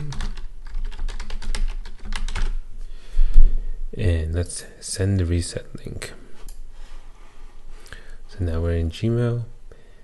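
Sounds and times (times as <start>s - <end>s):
typing on computer keyboard: 0.0s - 2.6s.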